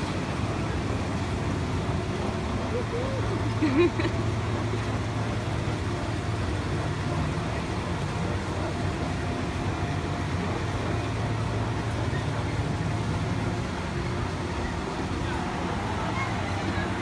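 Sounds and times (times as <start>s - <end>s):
constant wash of noise: 0.0s - 17.0s
low machine hum: 0.0s - 17.0s.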